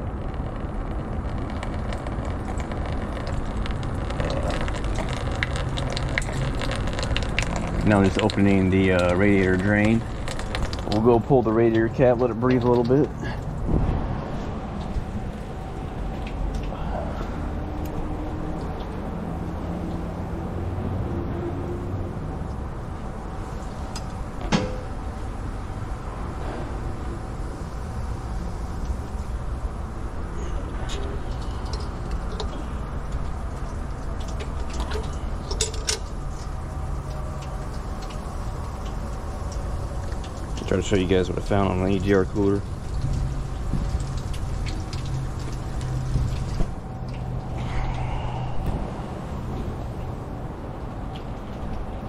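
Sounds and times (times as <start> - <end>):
coolant draining: 0.0 - 52.0.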